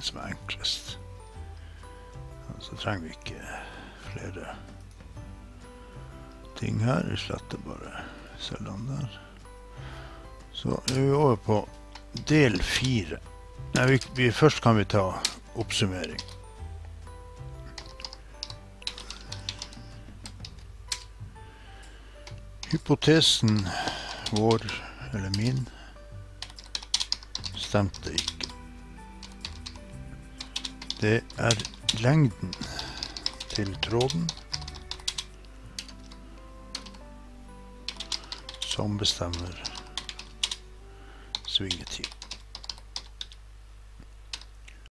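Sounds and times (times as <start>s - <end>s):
low steady hum: 0.0s - 44.9s
computer keyboard typing: 13.8s - 14.2s, 16.0s - 16.6s, 17.6s - 21.1s, 23.5s - 25.6s, 26.4s - 37.0s, 37.8s - 40.6s, 41.3s - 43.4s, 44.3s - 44.5s.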